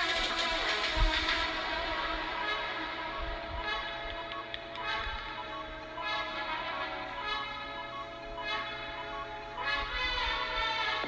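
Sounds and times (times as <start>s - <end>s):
background music with held chords: 0.0s - 11.0s.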